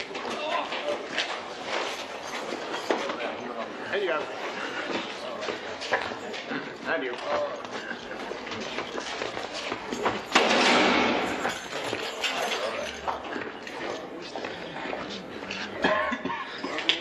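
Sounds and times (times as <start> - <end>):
loud bang with echo: 10.4 - 11.4.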